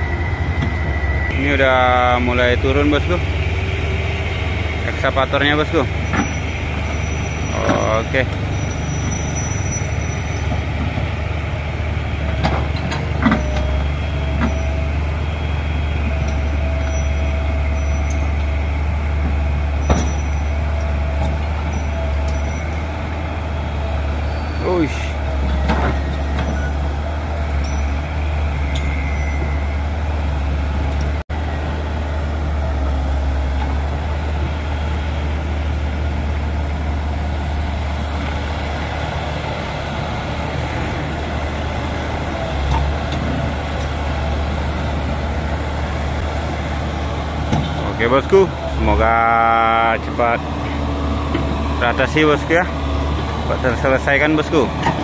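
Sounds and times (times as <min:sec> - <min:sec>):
brief squeals: 0:00.0 - 0:01.4, 0:06.0 - 0:10.6, 0:13.0 - 0:18.7, 0:19.8 - 0:20.6, 0:21.6 - 0:23.0, 0:24.2 - 0:30.5
excavator diesel engine running: 0:00.0 - 0:55.0.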